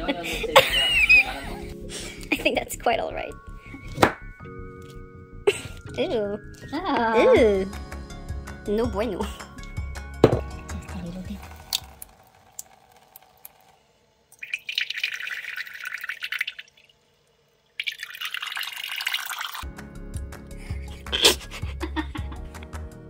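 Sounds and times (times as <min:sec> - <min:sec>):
background music with beat: 0:03.5 - 0:12.0, 0:19.6 - 0:23.0
tap water running into bowl: 0:10.2 - 0:17.0, 0:17.7 - 0:19.6.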